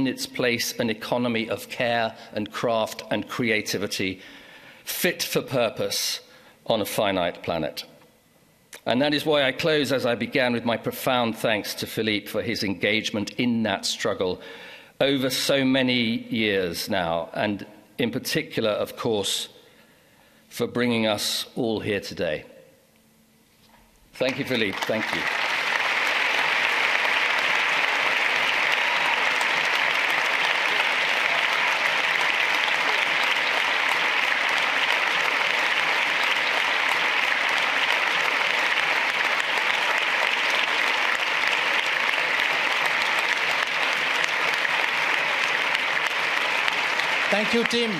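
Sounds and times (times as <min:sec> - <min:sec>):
audience applauding: 0:24.3 - 0:47.9.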